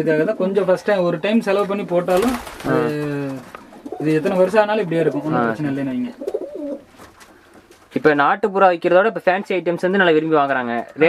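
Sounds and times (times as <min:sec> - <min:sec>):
pigeons cooing: 0:02.1 - 0:07.8.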